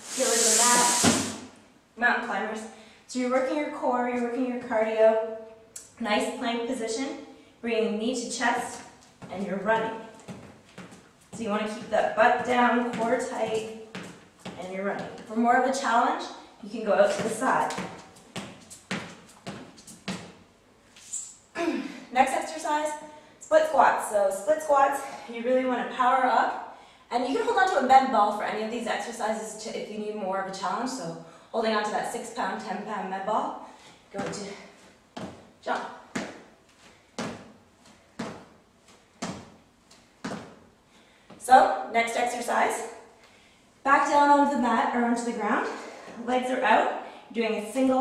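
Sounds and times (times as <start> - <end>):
sneakers thudding on hardwood floor: 9.2 - 15.3, 17.1 - 20.4, 36.1 - 36.5, 40.2 - 40.6
sneakers landing on hardwood floor: 13.9 - 15.3, 17.1 - 20.4, 36.1 - 36.5, 37.2 - 37.6, 38.2 - 38.6, 39.2 - 39.6, 40.2 - 40.6.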